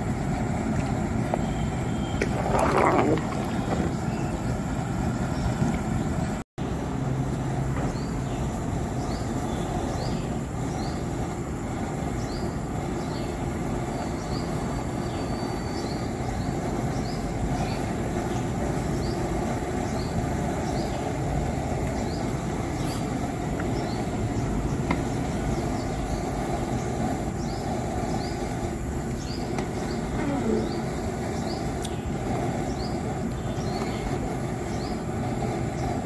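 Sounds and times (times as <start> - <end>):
gas burner roaring: 0.0 - 36.0.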